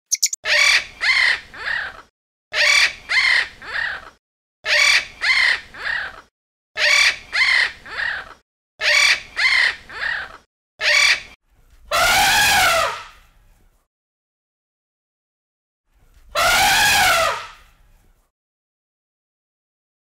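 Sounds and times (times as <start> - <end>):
macaw squawking: 0.0 - 1.4, 4.7 - 6.2.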